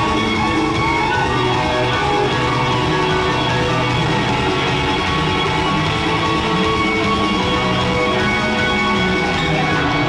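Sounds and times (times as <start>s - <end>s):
electric guitar bending lead lines: 0.0s - 10.0s
live rock band playing: 0.0s - 10.0s.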